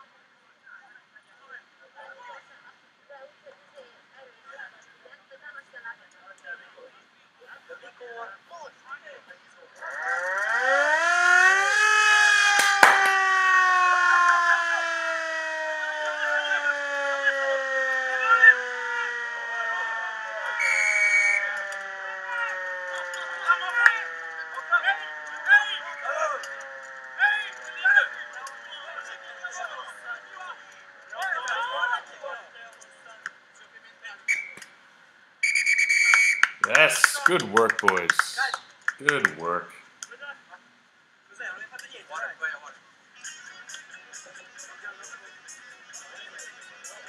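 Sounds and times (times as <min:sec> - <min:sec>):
siren winding up and down: 0:09.8 - 0:27.7.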